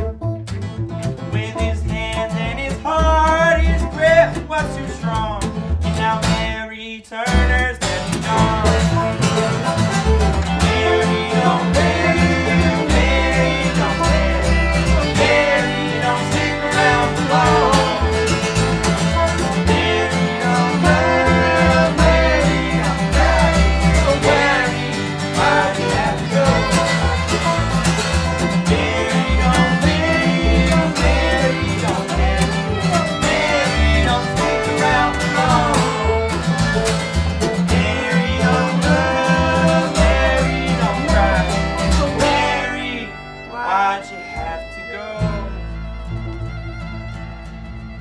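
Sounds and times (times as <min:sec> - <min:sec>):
bluegrass string band playing: 0:00.0 - 0:06.6, 0:07.3 - 0:48.0
fiddle: 0:00.0 - 0:06.6, 0:07.6 - 0:48.0
plucked bass line: 0:00.0 - 0:06.7, 0:07.3 - 0:48.0.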